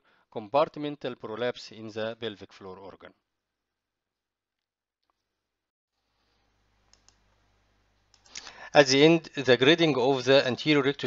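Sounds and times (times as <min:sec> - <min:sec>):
faint clicks: 0:06.9 - 0:07.2, 0:08.1 - 0:08.5.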